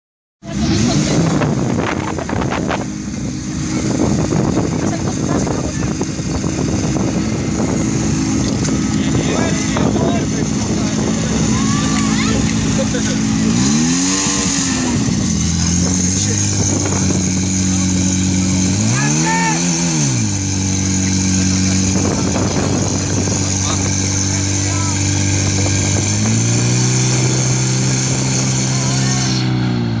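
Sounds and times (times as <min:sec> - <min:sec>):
fire pump engine revving: 0:00.4 - 0:30.0.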